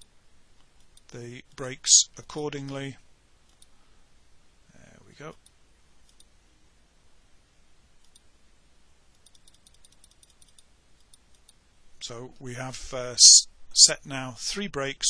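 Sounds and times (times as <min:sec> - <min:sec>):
computer mouse clicks: 0:03.4 - 0:03.7, 0:05.4 - 0:06.3, 0:08.0 - 0:08.3, 0:09.1 - 0:11.6.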